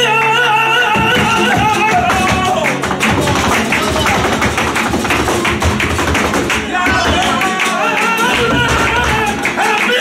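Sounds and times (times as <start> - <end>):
flamenco guitar: 0.0 - 10.0
heels striking wooden stage: 1.0 - 7.6, 8.2 - 10.0.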